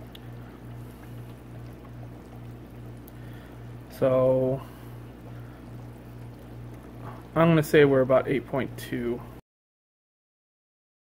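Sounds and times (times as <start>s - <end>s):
aquarium equipment humming: 0.0s - 9.4s
circulating water hiss: 0.0s - 9.4s.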